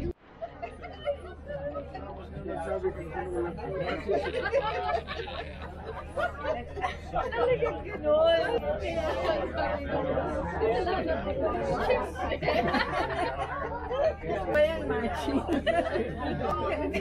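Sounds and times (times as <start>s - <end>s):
people chatting: 0.0s - 17.0s.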